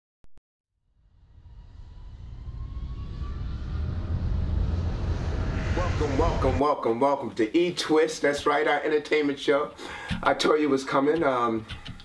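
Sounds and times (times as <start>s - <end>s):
rumbling whoosh: 0.8s - 7.2s
faint rising tone: 0.8s - 7.3s.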